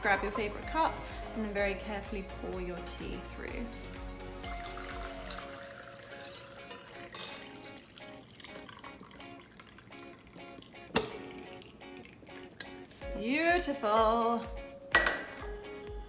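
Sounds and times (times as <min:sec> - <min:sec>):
background music: 0:00.0 - 0:16.0
tea pouring into a mug: 0:04.4 - 0:13.0.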